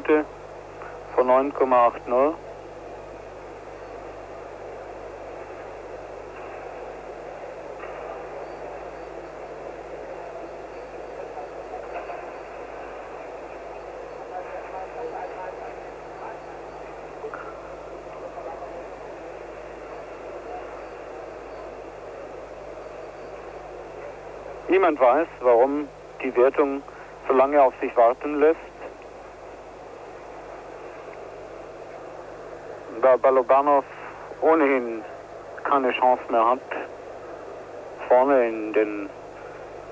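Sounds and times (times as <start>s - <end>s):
murmur of large crowd: 0.0s - 39.9s.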